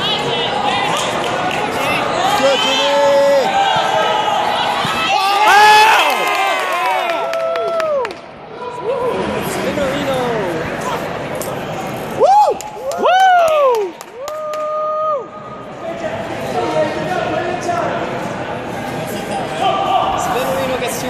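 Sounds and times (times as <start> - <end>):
crowd chatter: 0.0 - 7.2, 8.2 - 13.1, 15.1 - 21.0.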